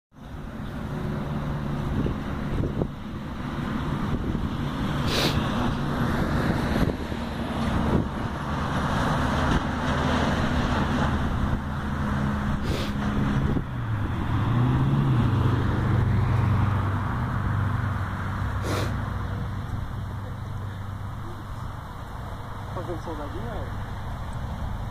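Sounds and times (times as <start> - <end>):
road noise: 0.1 - 24.9
vehicle engine running: 0.2 - 24.9.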